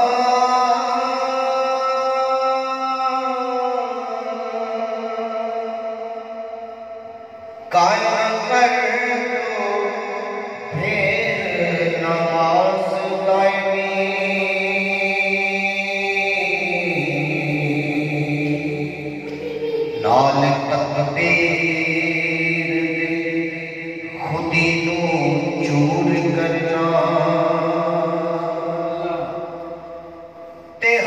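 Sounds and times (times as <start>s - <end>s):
man singing into microphone: 0.0s - 31.0s.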